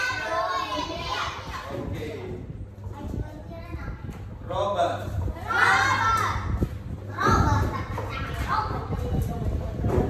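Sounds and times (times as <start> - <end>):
children's voices speaking: 0.0 - 10.0.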